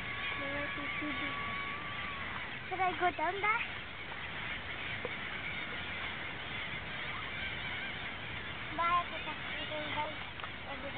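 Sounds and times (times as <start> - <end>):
flock of gulls calling: 0.0 - 10.9
loud gull call: 0.0 - 10.9.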